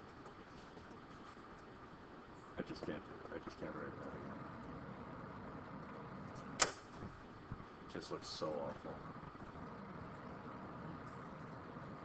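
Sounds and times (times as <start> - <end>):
room hum with hiss: 0.0 - 12.0
man speaking: 2.6 - 4.5, 7.9 - 9.1.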